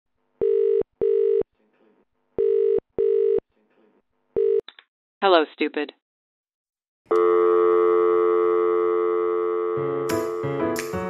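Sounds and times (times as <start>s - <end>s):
telephone ringback tone: 0.4s - 1.4s, 7.2s - 10.0s.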